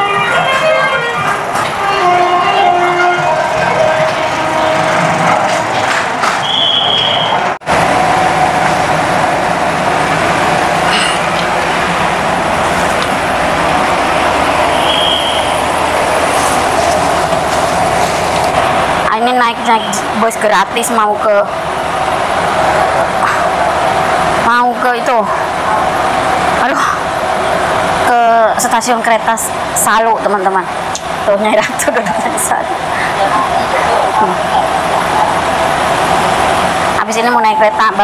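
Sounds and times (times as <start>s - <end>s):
bus cabin running noise: 0.0s - 38.0s.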